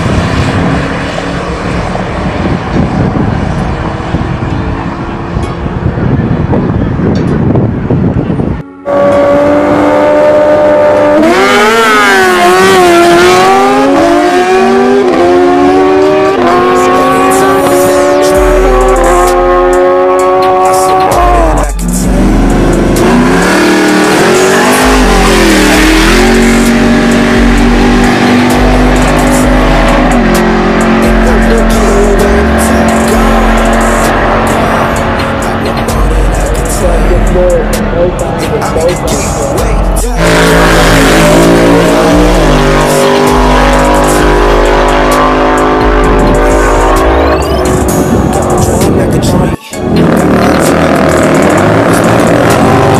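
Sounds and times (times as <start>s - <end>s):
deep pulsing bass music: 0.0s - 52.9s
drag racing engines revving: 0.0s - 52.9s.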